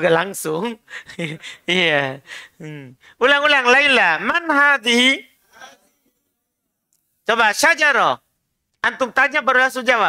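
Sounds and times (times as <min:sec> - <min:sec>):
man talking: 0:00.0 - 0:05.4, 0:07.2 - 0:10.0.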